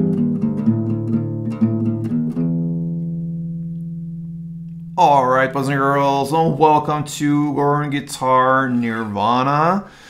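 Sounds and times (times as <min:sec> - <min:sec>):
acoustic guitar note ringing: 0:00.0 - 0:08.5.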